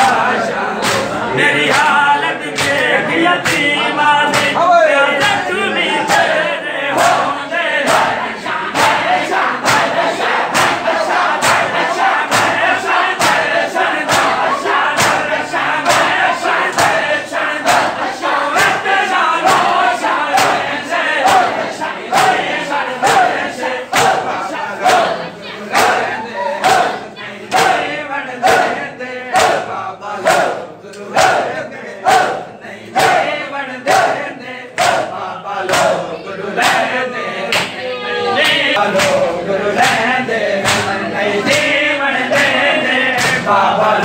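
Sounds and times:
men slapping chests: 0:00.0 - 0:37.8, 0:38.4 - 0:44.0
crowd chanting: 0:00.0 - 0:44.0
hands slapping chests: 0:00.8 - 0:01.9, 0:02.6 - 0:03.7, 0:04.3 - 0:04.6, 0:08.8 - 0:12.6, 0:13.2 - 0:17.0, 0:35.7 - 0:36.0, 0:38.4 - 0:39.2, 0:39.8 - 0:42.6.

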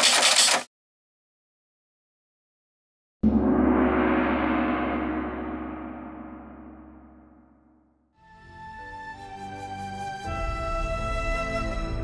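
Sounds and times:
gong ringing: 0:03.2 - 0:07.7.

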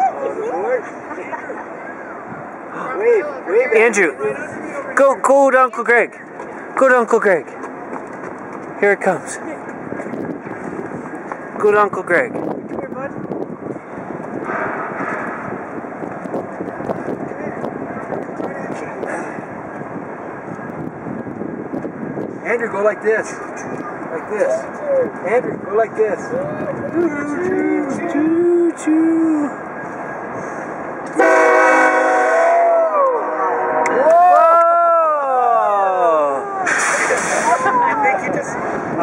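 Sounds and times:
freight train rumbling past: 0:12.3 - 0:28.1, 0:29.0 - 0:34.3
locomotive air horn blast: 0:31.1 - 0:34.0.

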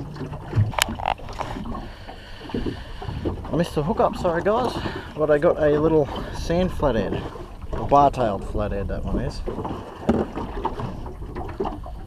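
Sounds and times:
water around a boat: 0:00.0 - 0:12.0
wind: 0:00.0 - 0:12.0.

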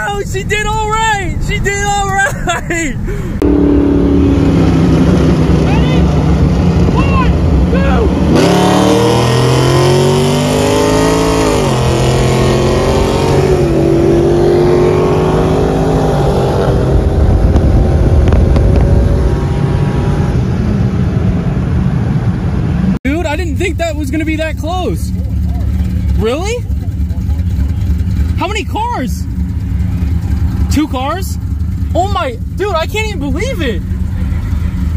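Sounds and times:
car engines at full throttle: 0:00.0 - 0:34.9
road and wind noise: 0:00.0 - 0:34.9.

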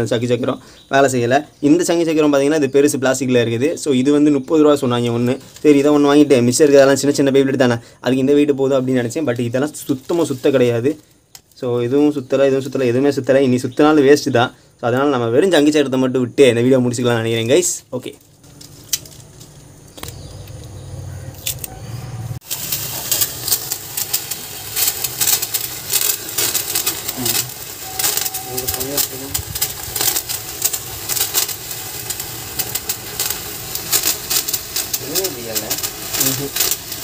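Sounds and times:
firework spinner fizzing crackle: 0:04.8 - 0:07.4, 0:08.7 - 0:11.7, 0:17.4 - 0:20.7, 0:22.4 - 0:37.0.

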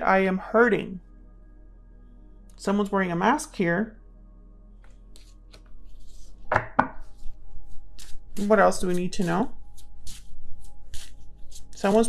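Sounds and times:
cards rustling: 0:04.9 - 0:06.4, 0:07.2 - 0:12.0
sharp knocks on table: 0:06.5 - 0:07.0.

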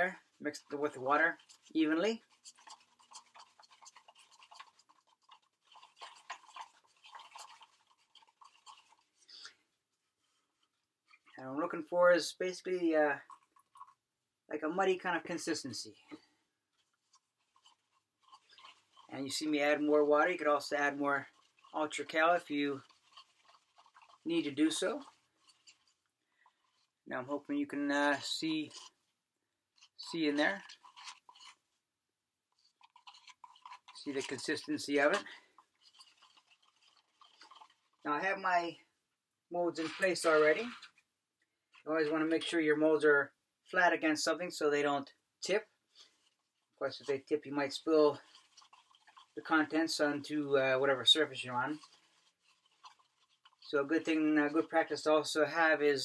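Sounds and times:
stick scraping in a cup: 0:00.0 - 0:11.4, 0:13.1 - 0:14.0, 0:15.2 - 0:29.1, 0:29.8 - 0:31.6, 0:32.5 - 0:38.8, 0:39.7 - 0:41.0, 0:45.0 - 0:55.0.

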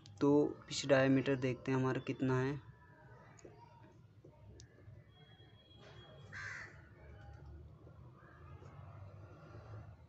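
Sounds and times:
crow cawing: 0:06.3 - 0:06.9.

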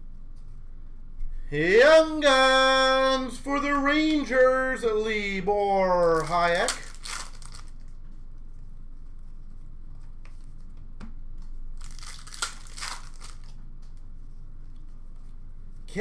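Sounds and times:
foil wrappers crinkling and tearing: 0:06.0 - 0:08.0, 0:11.7 - 0:13.6.

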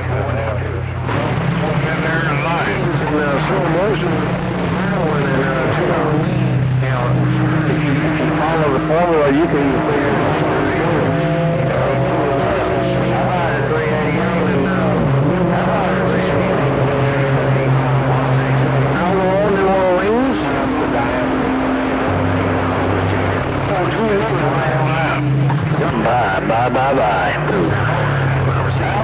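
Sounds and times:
droning radio hums and whistles: 0:00.0 - 0:29.0
garbled radio voices: 0:00.0 - 0:29.0.

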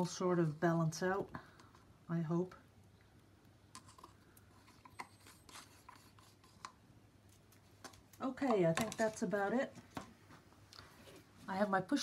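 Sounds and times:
stir stick scraping plastic cup: 0:03.8 - 0:06.8.

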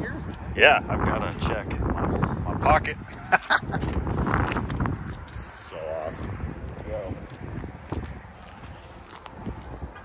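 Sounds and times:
footsteps on concrete: 0:03.8 - 0:05.4, 0:06.2 - 0:10.0.

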